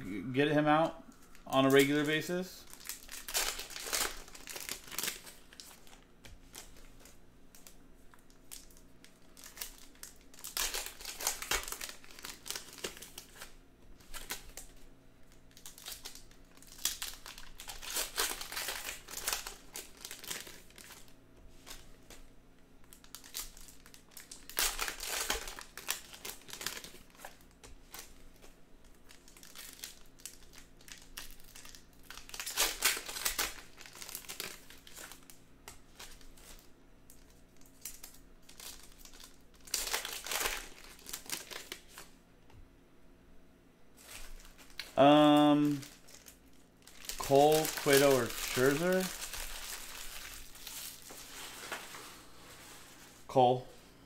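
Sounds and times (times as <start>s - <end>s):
foil wrappers crinkling: 1.1s - 22.2s, 22.8s - 42.1s, 44.0s - 53.3s
card packs torn open: 1.5s - 6.9s, 7.6s - 21.8s, 22.9s - 28.1s, 28.8s - 42.1s, 44.0s - 51.7s.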